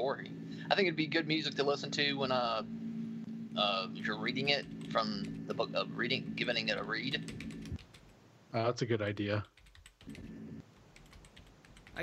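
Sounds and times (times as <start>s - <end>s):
typing on computer keyboard: 7.3s - 8.2s, 9.4s - 12.0s.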